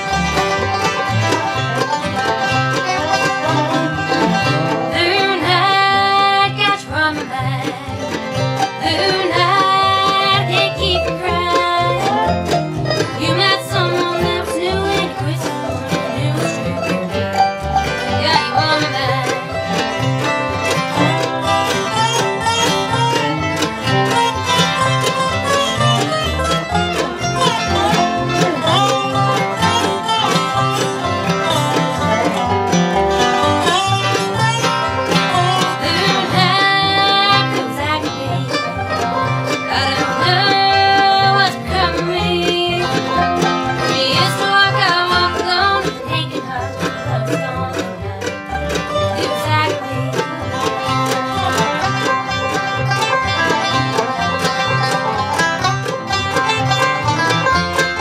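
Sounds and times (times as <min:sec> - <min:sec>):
bluegrass band playing: 0:00.0 - 0:58.0
woman singing: 0:04.8 - 0:17.2, 0:18.0 - 0:19.6, 0:35.3 - 0:38.8, 0:39.5 - 0:48.4, 0:49.0 - 0:52.0.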